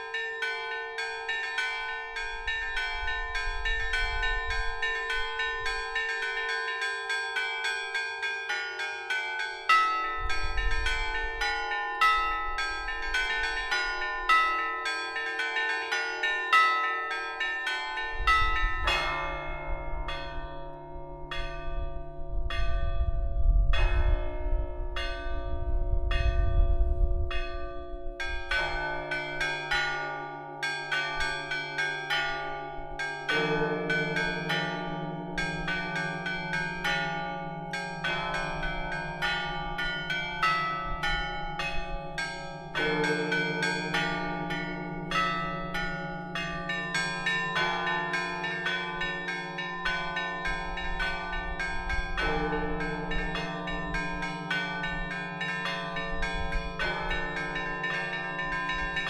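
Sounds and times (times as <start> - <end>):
church bells pealing: 0.0 - 59.0.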